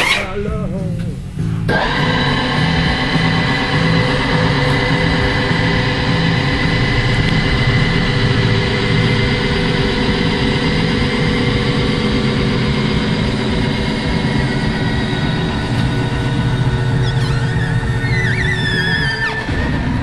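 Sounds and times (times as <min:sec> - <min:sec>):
twin boat engines idling: 0:00.0 - 0:20.0.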